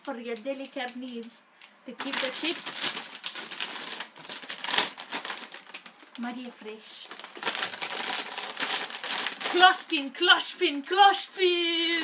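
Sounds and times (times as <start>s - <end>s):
plastic bag crinkling: 2.0s - 12.0s.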